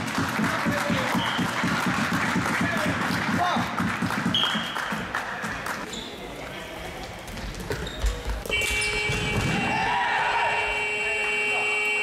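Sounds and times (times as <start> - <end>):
buzzer long steady tone: 10.4 - 12.0.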